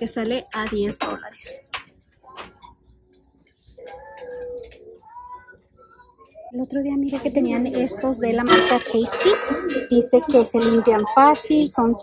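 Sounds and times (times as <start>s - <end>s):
pot clinking on metal shelf: 8.4s - 11.7s.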